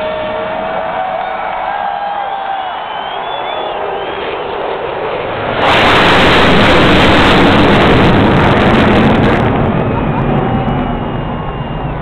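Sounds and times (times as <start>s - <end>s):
fighter jets flying overhead: 0.0s - 12.0s.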